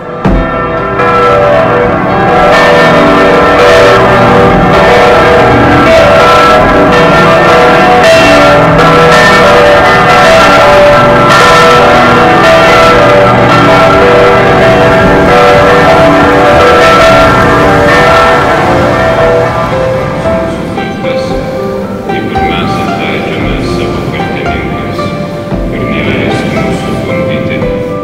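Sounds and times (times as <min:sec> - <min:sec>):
bells chiming in a peal: 0:00.0 - 0:28.0.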